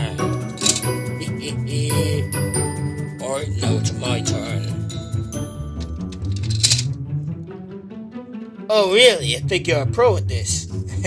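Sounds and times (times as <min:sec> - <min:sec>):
background music with low bass: 0:00.0 - 0:11.0.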